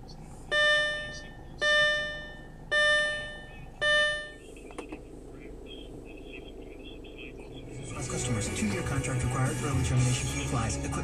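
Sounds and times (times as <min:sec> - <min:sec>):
car engine idling: 0:00.0 - 0:09.8.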